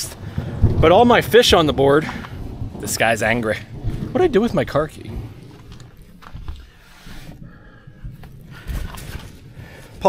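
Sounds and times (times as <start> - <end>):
low thumps: 0.0 - 10.0.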